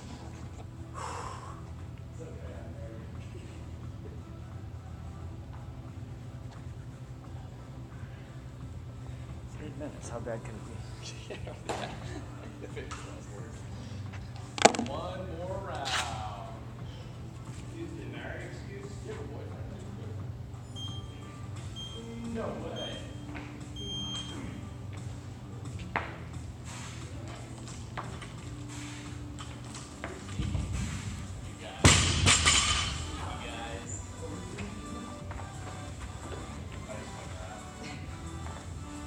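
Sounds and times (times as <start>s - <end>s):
steady low hum: 0.0s - 15.6s, 16.4s - 39.0s.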